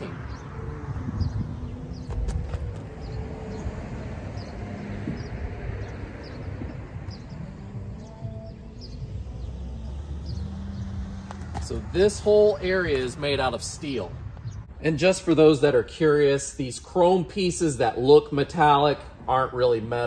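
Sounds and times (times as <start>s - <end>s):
bird chirping: 0.0s - 14.9s
low rumble of wind or traffic: 0.0s - 20.0s.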